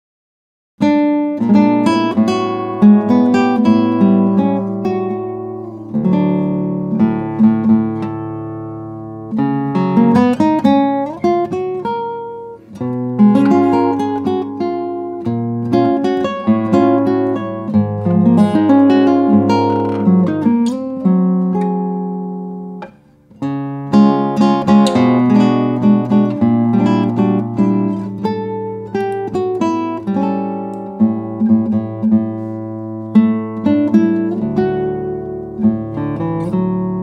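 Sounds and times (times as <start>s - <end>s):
fingerstyle classical guitar: 0.8s - 37.0s.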